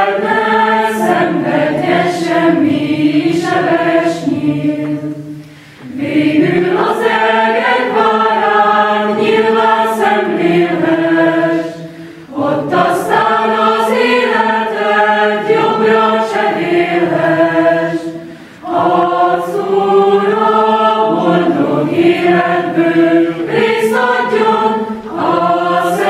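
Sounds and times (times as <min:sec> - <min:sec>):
choir singing held chords: 0:00.0 - 0:26.0.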